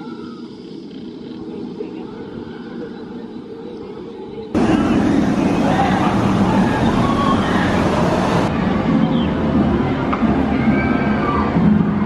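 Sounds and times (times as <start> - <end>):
faint voices: 0.0 - 12.0
distant roller coaster rumble: 0.3 - 12.0.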